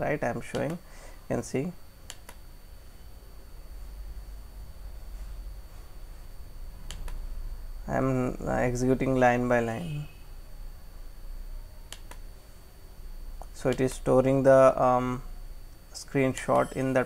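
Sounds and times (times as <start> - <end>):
low hum and room noise: 0.0 - 17.0.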